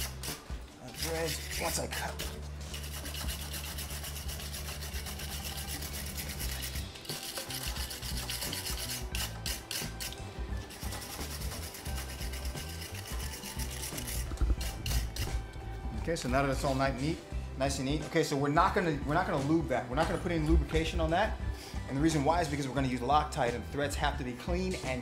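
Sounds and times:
wire brush scrubbing metal: 0.0 - 15.4.

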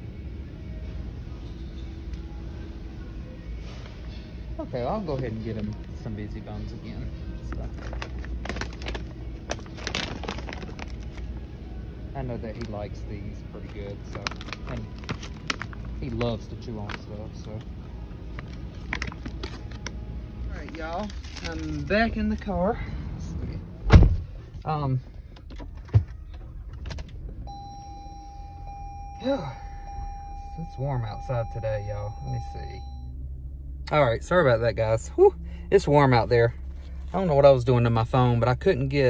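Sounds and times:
low car rumble: 0.0 - 39.0
low steady hum: 0.0 - 39.0
plastic bag crinkling: 7.6 - 11.5, 13.6 - 17.1, 20.6 - 22.0.

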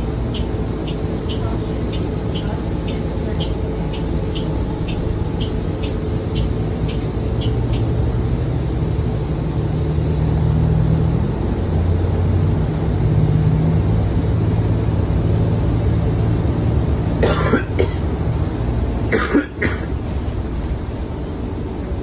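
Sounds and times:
bus drivetrain drone: 0.0 - 22.0
road noise: 0.0 - 22.0.

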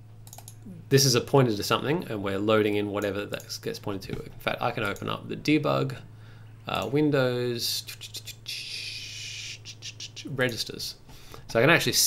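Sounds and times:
low electrical hum: 0.0 - 12.0
faint clicks: 0.2 - 0.6.

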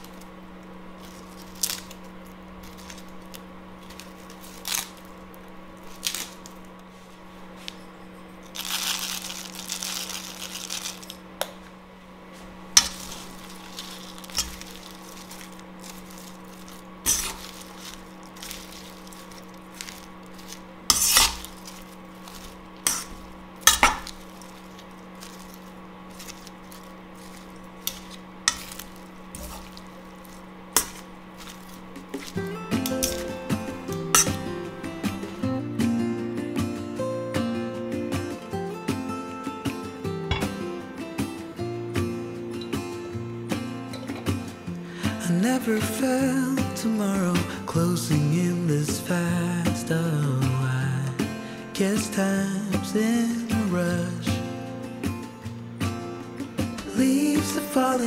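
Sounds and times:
steady low hum: 0.0 - 58.0
acoustic guitar music: 12.7 - 58.0
metal tongs clinking in bowl: 32.1 - 34.5.

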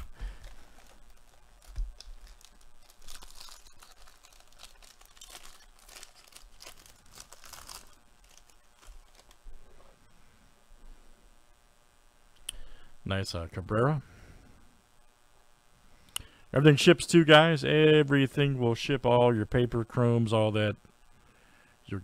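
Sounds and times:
foil wrapper tearing and crinkling: 0.0 - 9.5.

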